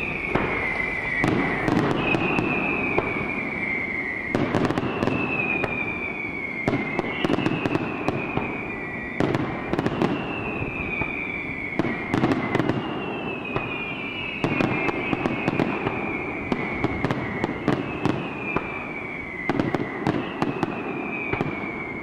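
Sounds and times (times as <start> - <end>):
falling firework whistle: 0.0 - 22.0
fireworks bangs and crackling: 0.0 - 22.0.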